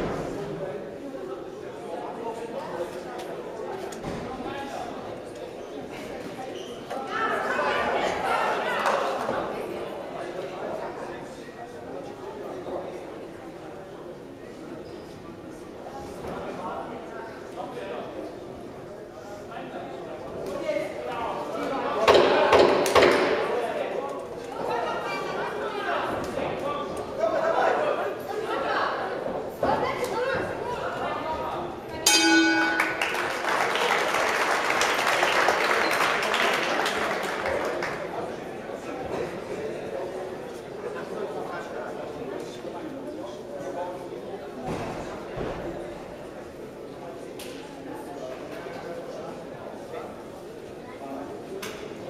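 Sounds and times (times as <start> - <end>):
people talking in echoing hall: 0.0 - 52.0.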